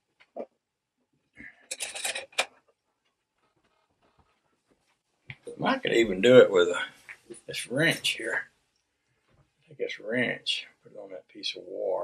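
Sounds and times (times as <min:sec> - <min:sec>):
clattering and metallic clicks: 0:01.7 - 0:02.5.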